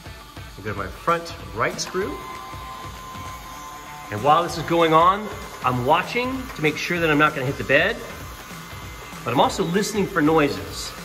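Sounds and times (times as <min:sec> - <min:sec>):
stepper motors whining: 0:00.0 - 0:11.0.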